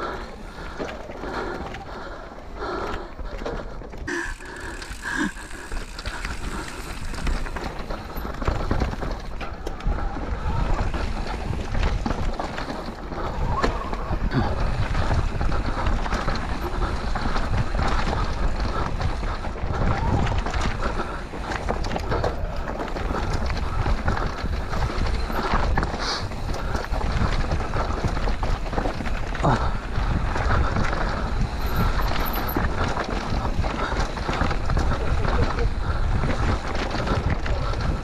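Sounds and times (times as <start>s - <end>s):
bike tyres rattling over dirt: 0.0s - 38.0s
wind noise on microphone: 6.2s - 38.0s.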